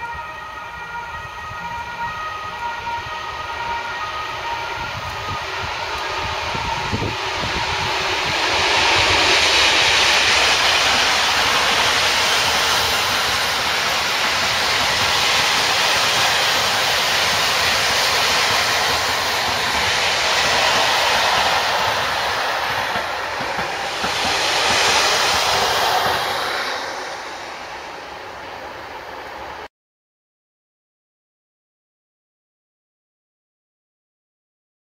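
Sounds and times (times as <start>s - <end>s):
diesel locomotive passing: 0.0s - 29.7s
train wheels rumbling on rail: 0.0s - 29.7s.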